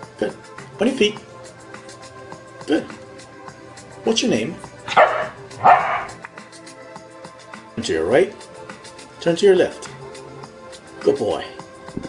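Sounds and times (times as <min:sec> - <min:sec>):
dog barking: 0:04.9 - 0:06.2.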